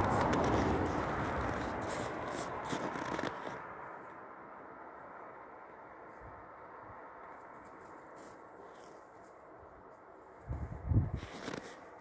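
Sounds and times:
footsteps crunching in snow: 0.0s - 3.7s, 7.4s - 12.0s.

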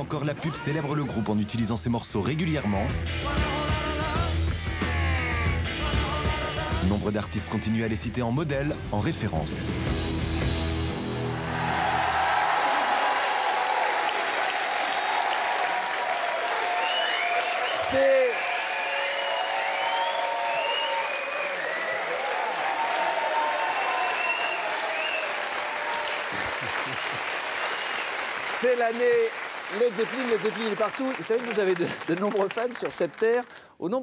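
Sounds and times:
rock guitar music: 2.8s - 6.8s, 9.6s - 11.4s
cheers and shouts: 11.1s - 26.8s
audience applauding: 11.2s - 33.8s.

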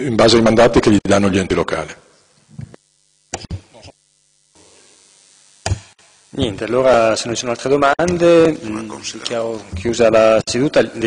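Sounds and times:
sharp knock near microphone: 5.6s - 5.9s.

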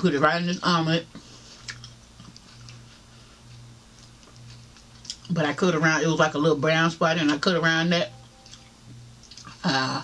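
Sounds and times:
closed-mouth chewing: 1.6s - 5.3s, 8.4s - 9.6s.

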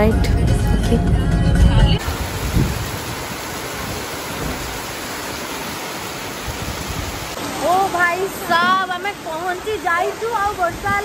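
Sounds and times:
heavy rain on pavement: 2.0s - 11.0s.

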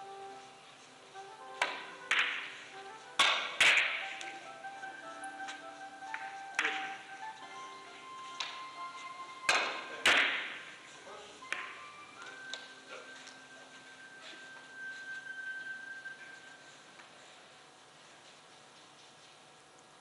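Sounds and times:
billiard balls clicking: 1.6s - 2.6s
cue striking ball: 1.6s - 2.6s.

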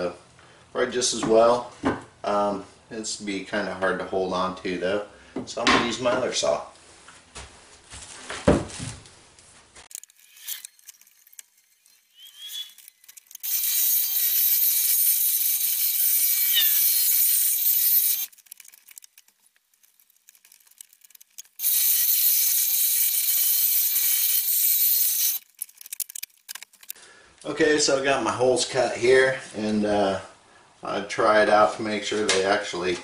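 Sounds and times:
scroll saw cutting wood: 9.9s - 19.3s, 20.4s - 26.9s.

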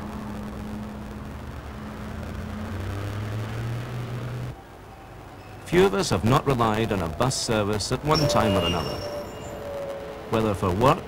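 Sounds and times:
bus passing: 0.0s - 11.0s
cars passing: 0.0s - 11.0s
road noise: 0.0s - 11.0s.

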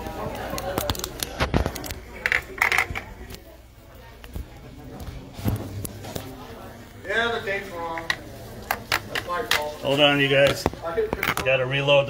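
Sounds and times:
indistinct talk: 0.0s - 12.0s.

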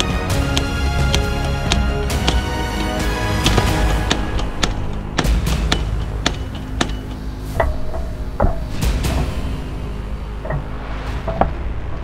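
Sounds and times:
forging hammer striking metal: 0.0s - 11.6s
background music: 0.0s - 12.0s.

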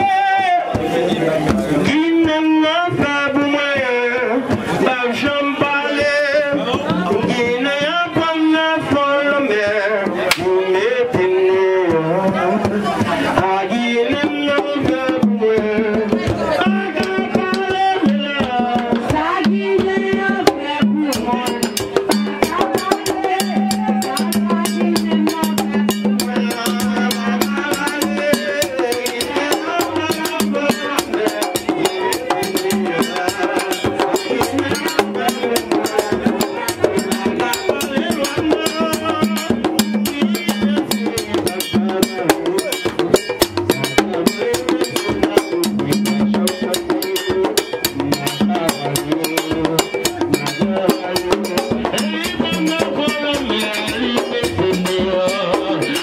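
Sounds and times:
drums driving rhythm: 0.0s - 56.0s
man singing through microphone: 0.0s - 56.0s.

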